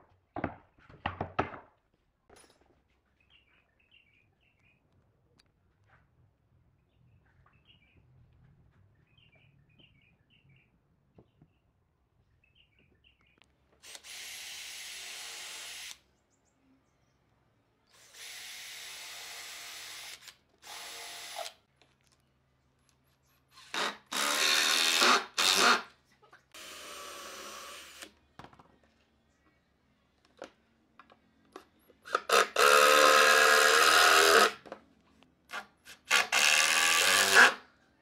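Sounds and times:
cordless drill boring into wood: 13.8s - 16.0s, 17.9s - 21.6s, 23.6s - 25.9s, 26.6s - 28.1s, 32.1s - 34.6s, 35.5s - 37.6s.

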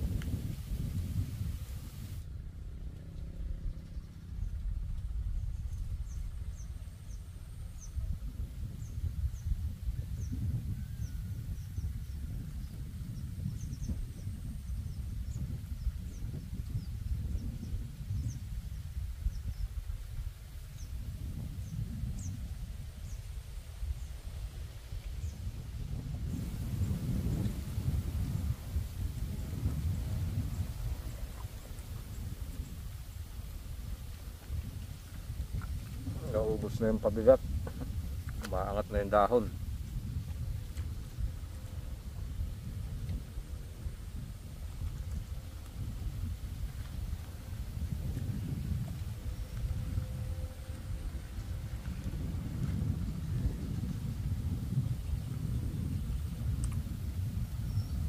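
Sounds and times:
wind rumbling on microphone: 0.0s - 58.0s.

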